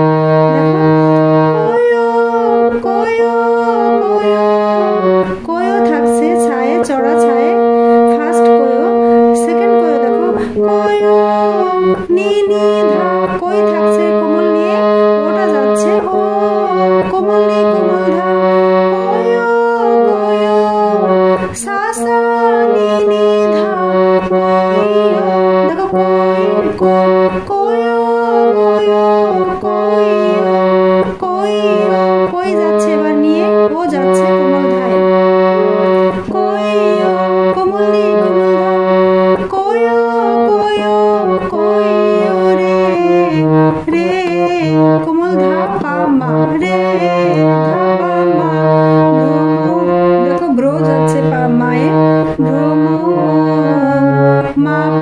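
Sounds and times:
harmonium playing a melody: 0:00.0 - 0:55.0.

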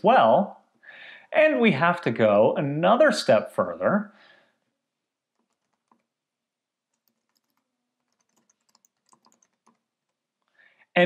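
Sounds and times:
computer keyboard keystrokes: 0:05.3 - 0:06.1, 0:06.9 - 0:10.2.

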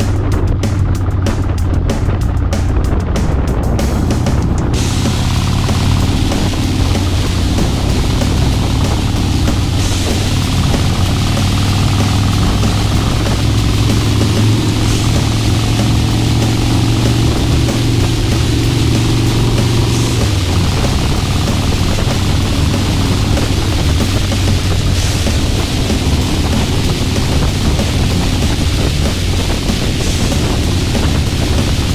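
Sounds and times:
motorcycle engine cruising: 0:00.0 - 0:31.9
wind rushing over microphone: 0:00.0 - 0:31.9.

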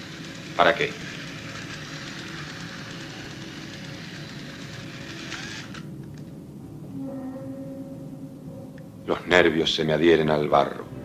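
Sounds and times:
toy electric train running: 0:00.0 - 0:05.9.

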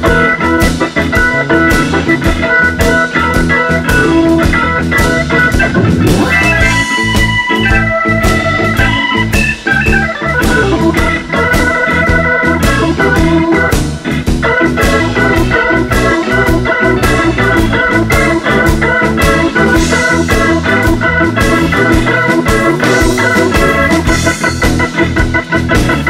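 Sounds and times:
organ playing blues: 0:00.0 - 0:26.0
steady drum beat: 0:00.0 - 0:26.0.

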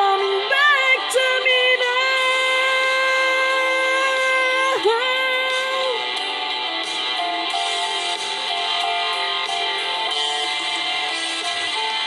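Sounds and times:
karaoke backing track: 0:00.0 - 0:12.0.

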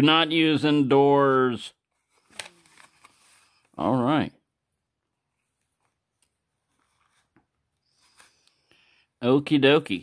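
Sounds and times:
plastic package clicks and rustles: 0:02.2 - 0:03.4.

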